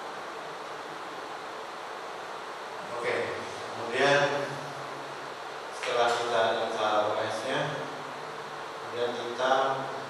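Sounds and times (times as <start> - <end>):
low buzzing hum: 0.0 - 10.0
man speaking through microphone: 2.8 - 4.8, 5.8 - 8.0, 8.8 - 10.0.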